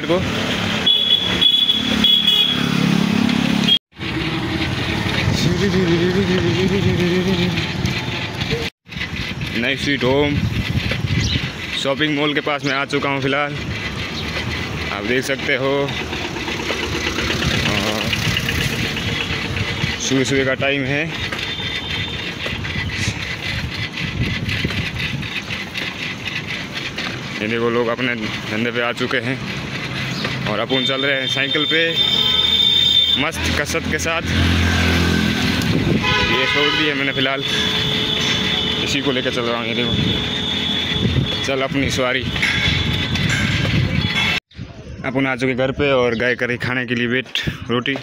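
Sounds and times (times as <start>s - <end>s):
vehicle engine running: 0.0s - 44.4s
bicycle road noise: 0.0s - 48.0s
street traffic: 0.0s - 48.0s
wind on microphone: 8.9s - 11.7s, 22.0s - 25.8s, 35.4s - 36.3s, 39.9s - 41.4s, 42.2s - 46.0s.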